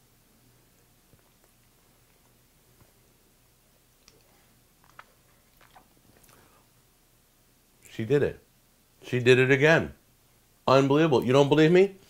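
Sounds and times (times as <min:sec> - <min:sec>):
man chewing: 0:00.7 - 0:03.1, 0:03.8 - 0:06.7.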